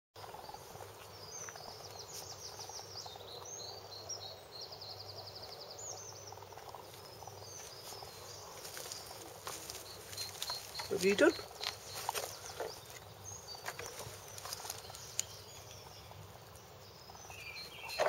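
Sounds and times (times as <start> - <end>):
songbird chirping and trilling: 0.2 - 18.0.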